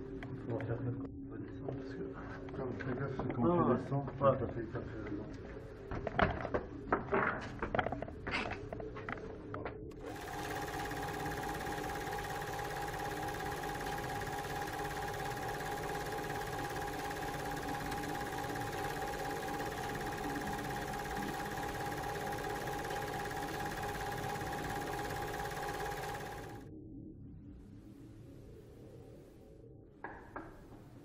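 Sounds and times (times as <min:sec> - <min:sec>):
steady hum with high whine: 0:09.8 - 0:29.9.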